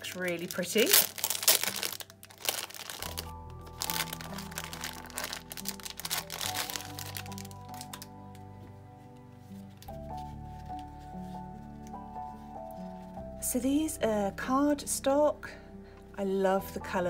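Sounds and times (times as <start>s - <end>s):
plastic bag crinkling: 0.0s - 8.2s
soft background music: 0.0s - 17.0s.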